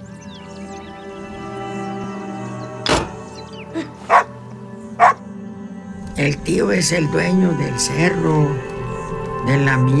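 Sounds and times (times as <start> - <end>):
music with long held notes: 0.0 - 10.0
dog barking: 4.1 - 4.3, 5.0 - 5.2.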